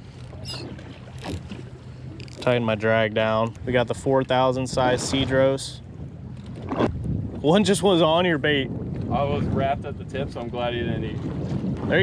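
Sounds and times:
boat engine hum: 0.0s - 9.3s
water noise: 0.0s - 12.0s
wind: 0.0s - 12.0s.

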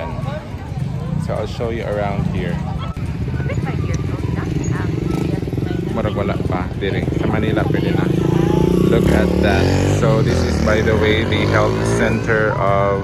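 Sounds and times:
crowd chatter: 0.0s - 13.0s
small motorcycle engine running: 0.0s - 13.0s.

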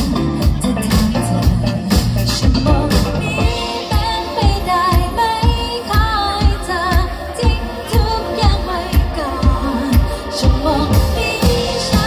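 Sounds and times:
pop accompaniment: 0.0s - 12.0s
woman singing into a microphone: 0.0s - 12.0s.

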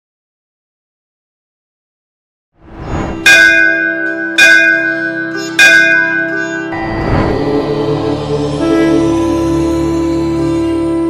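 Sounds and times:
music drone: 3.1s - 11.0s
large bell ringing: 3.2s - 8.7s.

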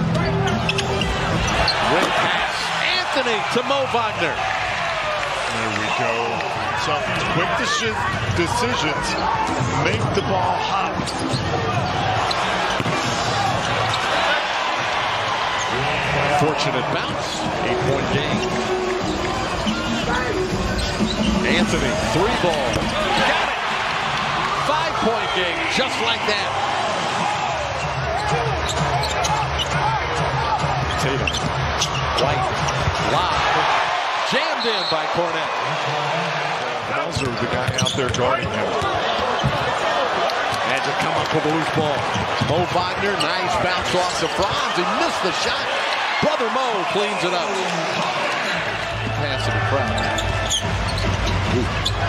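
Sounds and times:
crowd noise: 0.0s - 52.0s
sneaker squeaks: 0.3s - 1.8s, 11.0s - 13.0s, 20.7s - 21.6s, 27.8s - 29.8s, 30.8s - 32.8s, 37.1s - 39.8s, 43.2s - 43.5s, 49.8s - 52.0s.

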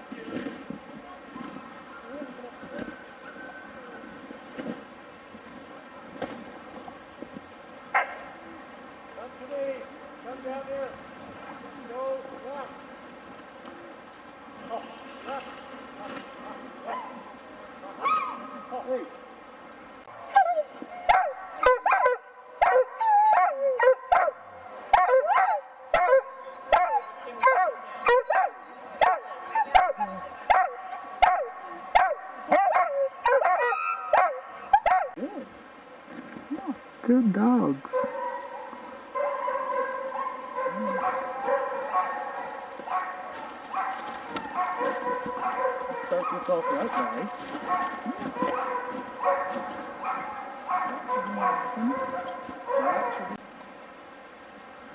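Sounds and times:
sled dogs barking and yipping: 7.9s - 8.4s, 16.4s - 17.3s, 18.0s - 18.9s, 20.1s - 35.3s, 37.9s - 53.4s.

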